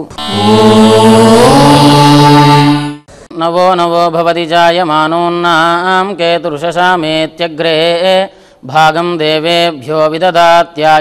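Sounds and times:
chanted vocal note: 0:00.1 - 0:03.1.

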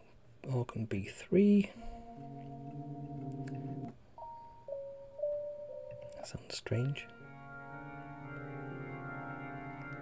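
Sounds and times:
organ chord: 0:01.8 - 0:10.0.

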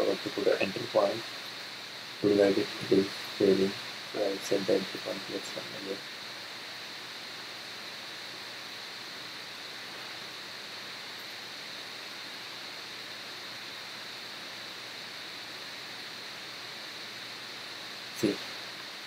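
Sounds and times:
microphone hiss: 0:00.0 - 0:19.0.

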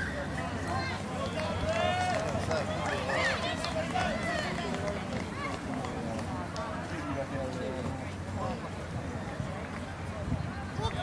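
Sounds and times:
people shouting and calling: 0:00.0 - 0:04.8
low background noise: 0:00.0 - 0:11.0.

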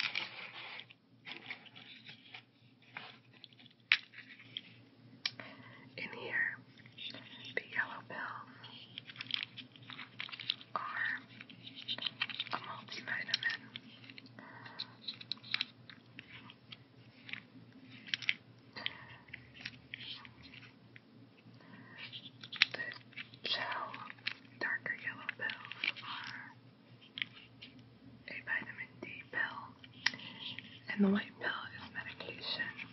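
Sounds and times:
soft whispering: 0:04.3 - 0:09.5, 0:10.4 - 0:15.6, 0:18.7 - 0:20.8, 0:21.4 - 0:27.5, 0:28.2 - 0:32.9.

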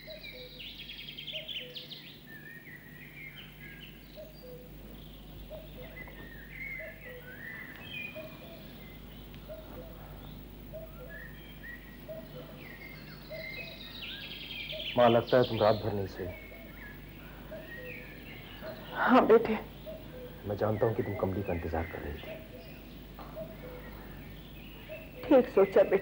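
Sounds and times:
birds chirping: 0:00.0 - 0:26.0
faint steady hum: 0:00.0 - 0:26.0.

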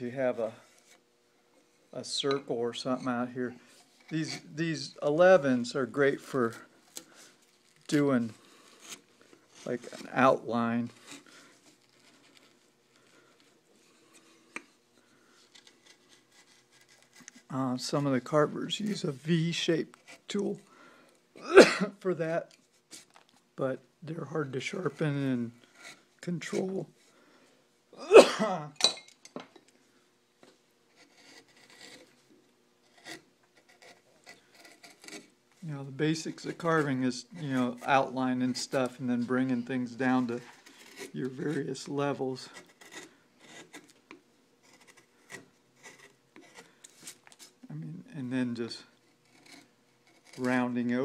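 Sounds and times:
gouge scraping wood: 0:03.0 - 0:20.3, 0:24.8 - 0:27.1, 0:30.9 - 0:35.4, 0:36.1 - 0:47.6, 0:49.0 - 0:51.0.

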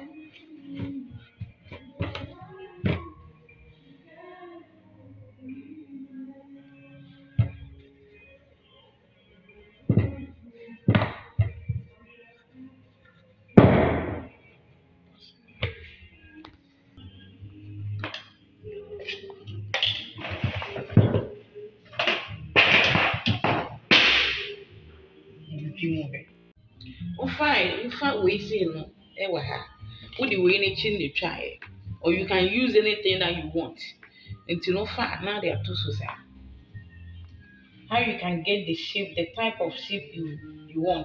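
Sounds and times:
faint music: 0:00.0 - 0:41.0.

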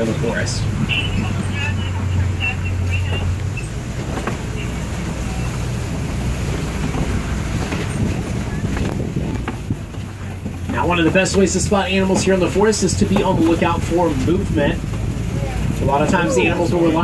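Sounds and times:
truck engine and road rumble: 0:00.0 - 0:17.0.

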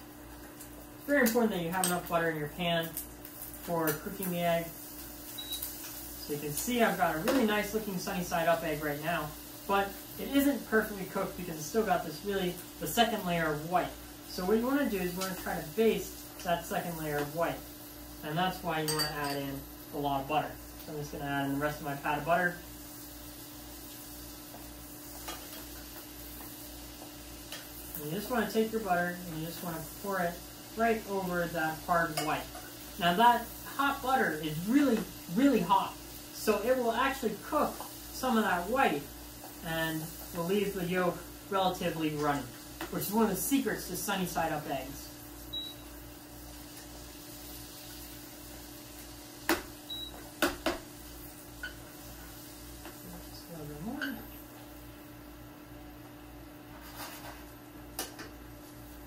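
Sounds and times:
butter sizzling in frying pan: 0:00.0 - 0:59.0
metal spoon clinking on pan: 0:18.9 - 0:19.5.

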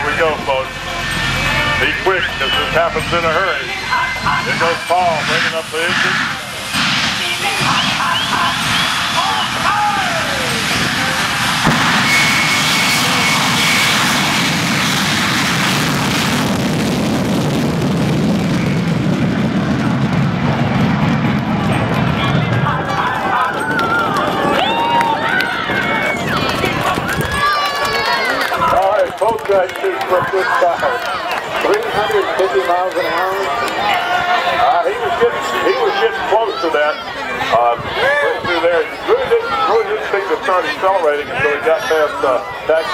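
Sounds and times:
voices: 0:00.0 - 0:11.8, 0:22.1 - 0:42.9
jet engine roaring: 0:00.0 - 0:42.9.

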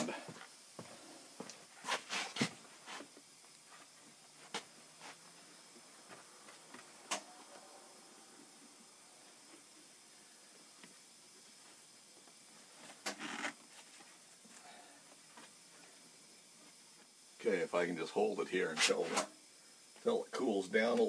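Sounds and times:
steady low hiss: 0:00.0 - 0:21.0
scraping rustle: 0:01.7 - 0:05.2.

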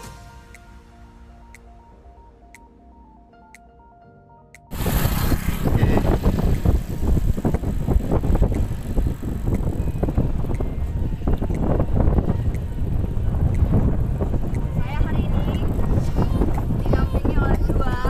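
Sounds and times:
soft background music: 0:00.0 - 0:18.0
wind buffeting microphone: 0:04.7 - 0:18.0.

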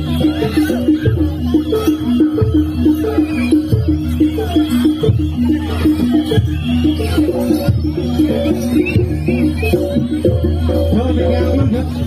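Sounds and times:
drum strokes: 0:00.0 - 0:12.0
live ensemble dance music: 0:00.0 - 0:12.0.

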